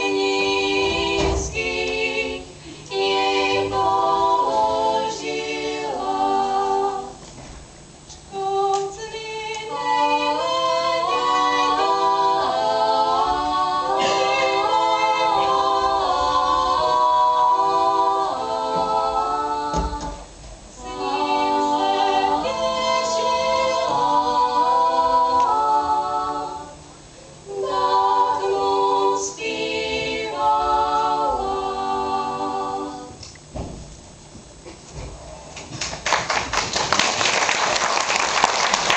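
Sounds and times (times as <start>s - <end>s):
women singing a cappella carol: 0.0s - 7.3s, 8.3s - 33.2s.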